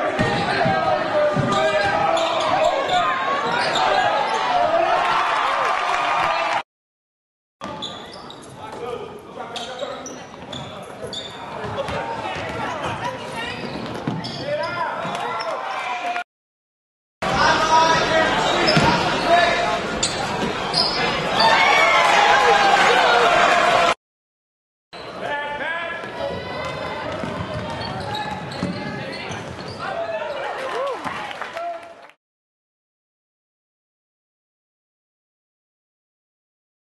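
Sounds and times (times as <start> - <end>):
sneakers squeaking: 1.3 - 4.7, 7.6 - 15.7, 18.4 - 21.6, 26.0 - 30.6
voices echoing in hall: 17.3 - 21.6, 25.0 - 30.8
basketball bouncing: 26.7 - 29.6.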